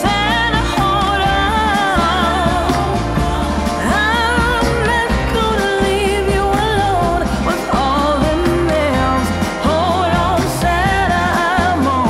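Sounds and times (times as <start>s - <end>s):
pop song with singer: 0.0s - 12.0s.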